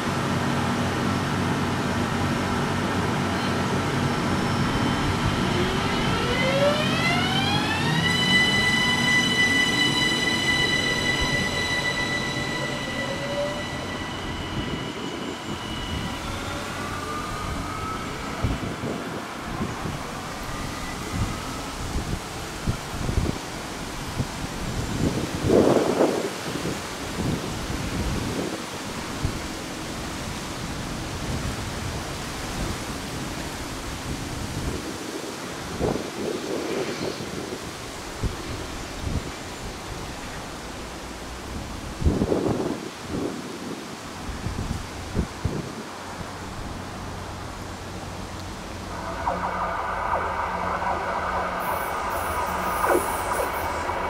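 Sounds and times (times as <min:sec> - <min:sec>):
rail noise burst: 0:00.0 - 0:54.0
train rolling noise: 0:00.0 - 0:54.0
electric train motor whine: 0:03.6 - 0:23.4, 0:48.5 - 0:54.0.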